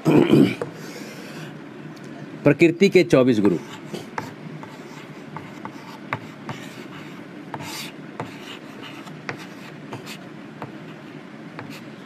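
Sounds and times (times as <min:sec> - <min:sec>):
chalk scratching on board: 0:03.4 - 0:11.9
chalk tapping on chalkboard: 0:03.4 - 0:11.9.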